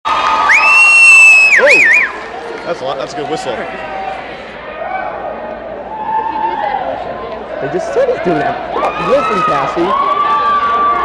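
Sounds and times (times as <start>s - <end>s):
crowd cheering: 0.1s - 11.0s
person whistling loudly: 0.5s - 2.1s.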